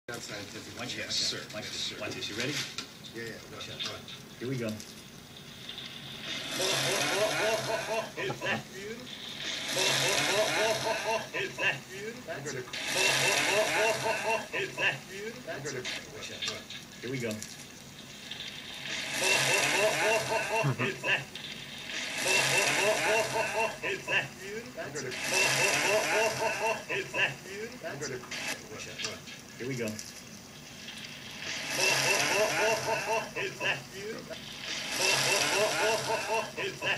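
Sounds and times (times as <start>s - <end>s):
rice noodles sizzling in oil: 0.1s - 11.6s, 12.8s - 15.2s, 16.0s - 24.2s, 25.2s - 27.5s, 30.2s - 36.9s.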